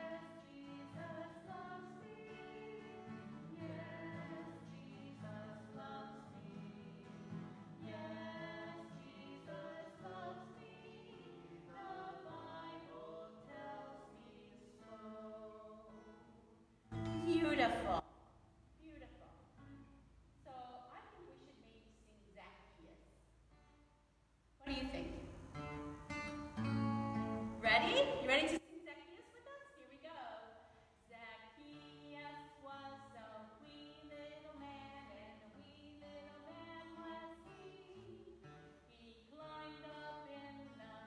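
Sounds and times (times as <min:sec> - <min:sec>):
strummed acoustic guitar: 0:00.0 - 0:12.5, 0:16.9 - 0:18.0, 0:25.3 - 0:28.5
singing and guitar: 0:00.0 - 0:18.0, 0:31.6 - 0:41.0.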